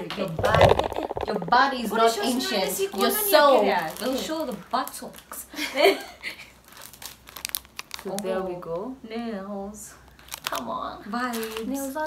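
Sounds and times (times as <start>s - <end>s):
plastic bags crinkling: 0.3s - 5.3s, 6.5s - 8.4s, 10.1s - 12.0s.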